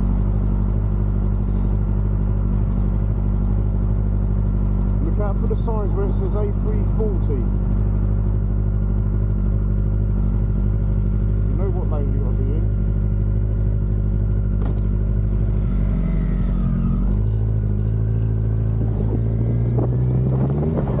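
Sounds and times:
motorcycle engines idling: 0.0s - 21.0s.

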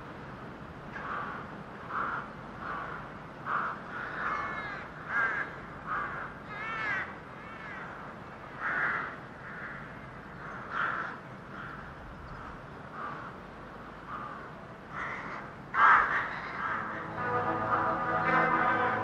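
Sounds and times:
steady background hiss: 0.0s - 19.0s
birds calling: 1.0s - 19.0s.

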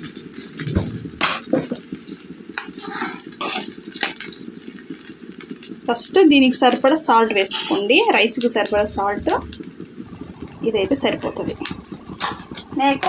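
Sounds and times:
low steady rustle: 0.0s - 13.0s.

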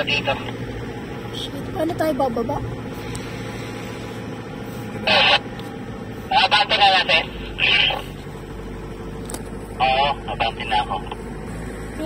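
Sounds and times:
car engine hum from inside: 0.0s - 12.0s.

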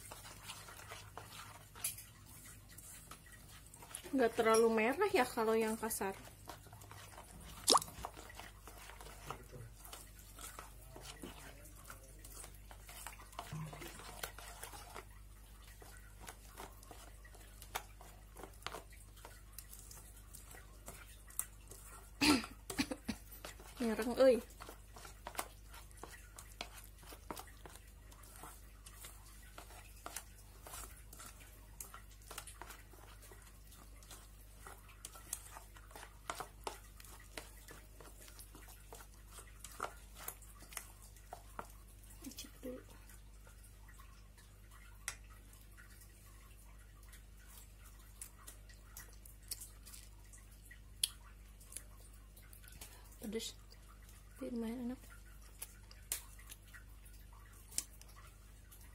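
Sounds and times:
spoon stirring paste in a pan: 0.0s - 58.9s.

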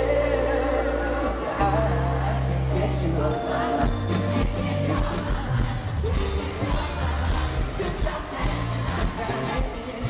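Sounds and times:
crowd noise: 0.0s - 10.0s
live pop band with bass: 0.0s - 10.0s.

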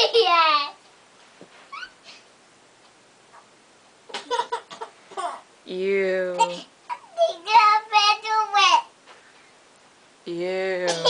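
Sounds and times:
toddler squeaking: 1.7s - 2.0s.

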